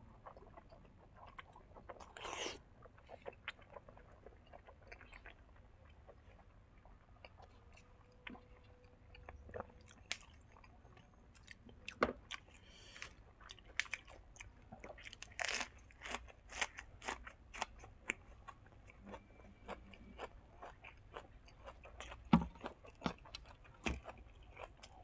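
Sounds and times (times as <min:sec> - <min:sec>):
person chewing crunchy greens: 0:00.0 - 0:25.0.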